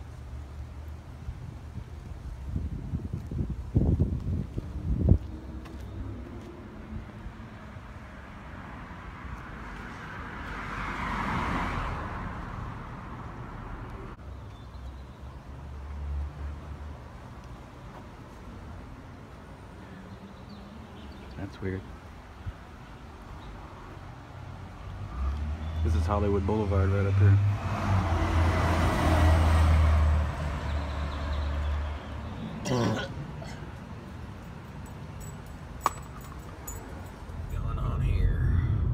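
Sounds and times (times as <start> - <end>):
road noise: 0.0 - 38.9
street traffic noise: 0.0 - 38.9
vehicle passing: 4.6 - 14.2, 23.5 - 32.6, 36.8 - 38.9
vehicle engine rumbling: 22.0 - 38.9.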